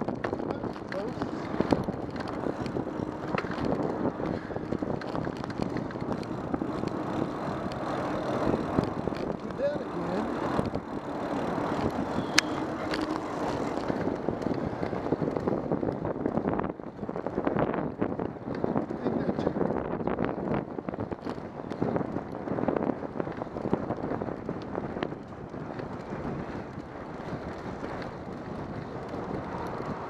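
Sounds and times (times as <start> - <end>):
freeway traffic rush: 0.0 - 30.0
wind on microphone: 0.0 - 30.0.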